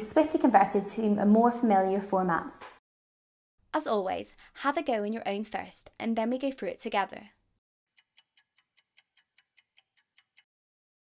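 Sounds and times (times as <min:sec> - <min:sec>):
faint clock ticking: 0:07.9 - 0:10.5.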